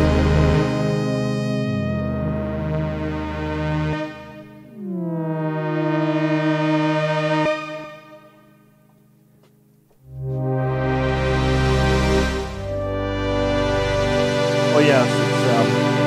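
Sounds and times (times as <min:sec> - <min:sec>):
synthesizer pad chords: 0:00.0 - 0:16.0.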